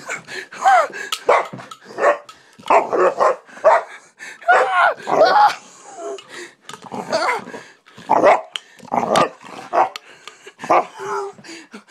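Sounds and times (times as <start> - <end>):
dog barking aggressively: 1.2 - 5.4, 8.0 - 10.0.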